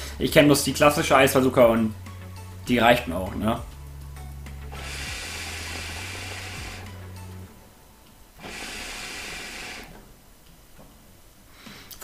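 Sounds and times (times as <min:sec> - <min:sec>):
hookah bubbling hiss: 0:04.6 - 0:07.3, 0:08.3 - 0:10.0.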